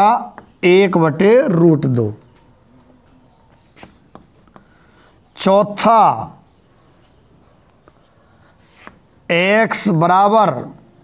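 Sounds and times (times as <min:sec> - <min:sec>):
chalk tapping on blackboard: 0:03.6 - 0:04.8, 0:07.8 - 0:09.1.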